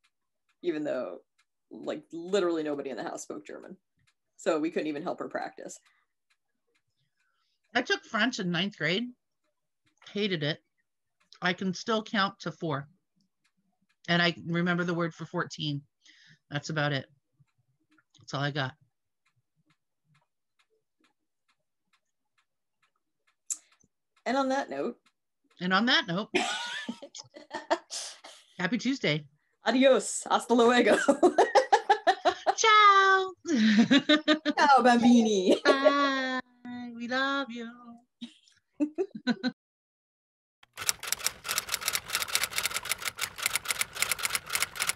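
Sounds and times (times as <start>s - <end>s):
faint regular ticking: 0.0s - 27.8s, 40.6s - 44.9s
typewriter key clacks: 40.7s - 44.9s.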